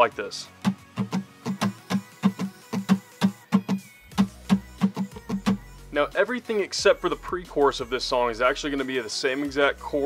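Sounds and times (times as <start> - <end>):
acoustic guitar strumming: 0.6 - 5.7.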